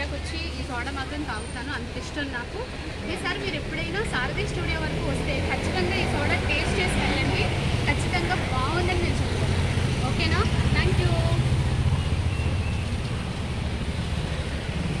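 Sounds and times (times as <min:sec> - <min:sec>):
traffic engine rumble: 0:00.0 - 0:15.0
vehicle passing: 0:00.0 - 0:15.0.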